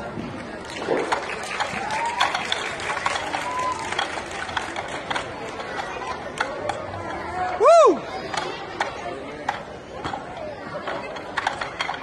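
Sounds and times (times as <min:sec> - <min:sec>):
murmur of chatter: 0:00.0 - 0:12.0.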